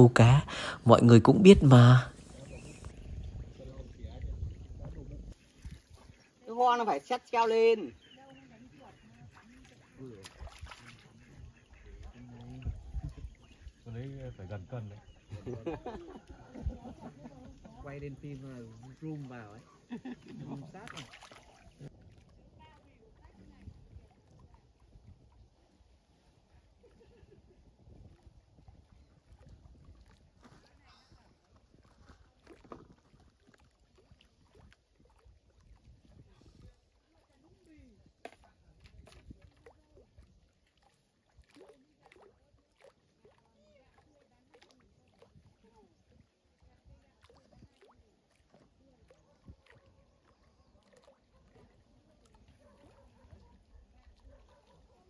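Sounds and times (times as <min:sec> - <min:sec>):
people talking quietly: 0:07.9 - 0:28.2.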